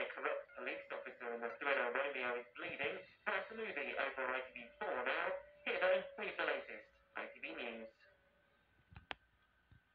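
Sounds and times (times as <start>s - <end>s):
speech from television speaker: 0.0s - 8.1s.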